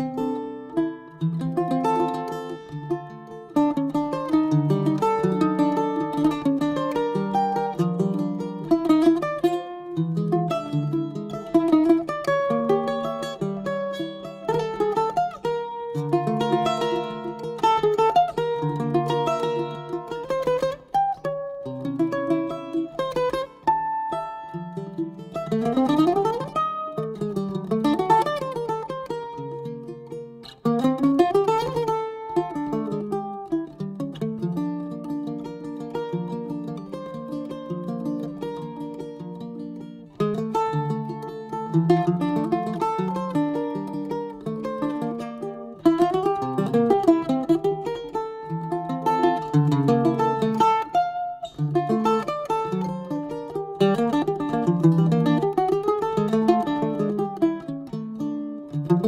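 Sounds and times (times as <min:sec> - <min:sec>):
mandolin plucked melody: 0:00.0 - 0:59.0.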